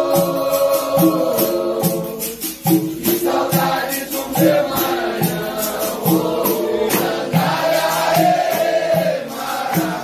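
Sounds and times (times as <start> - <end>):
group singing a chant: 0.0 - 10.0
percussion steady beat: 0.0 - 10.0.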